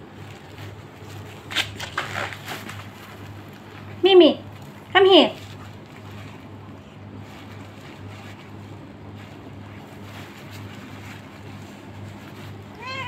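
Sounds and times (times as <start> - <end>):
cat meowing: 12.7 - 13.0.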